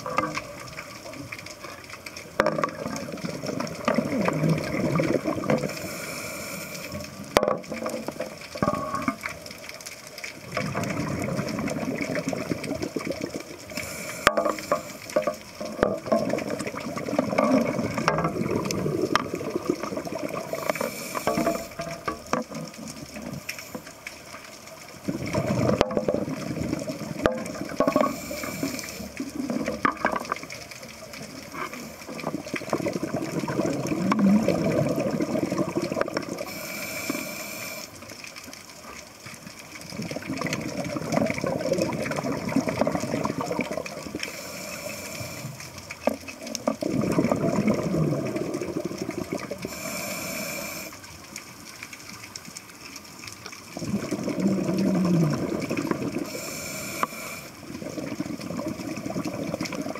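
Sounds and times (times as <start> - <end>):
diver breathing through regulator: 5.6 - 7.1, 13.7 - 15.2, 20.4 - 22.0, 27.9 - 29.2, 36.4 - 38.0, 44.2 - 45.8, 49.6 - 51.0, 56.2 - 57.6.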